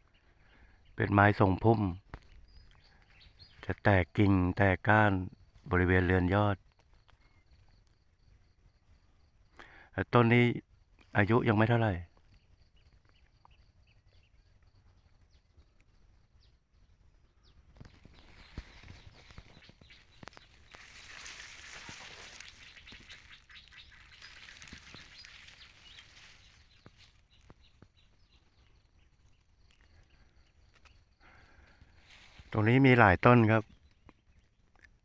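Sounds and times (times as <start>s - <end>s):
rustling of dry leaves and grass: 12.2s - 35.0s.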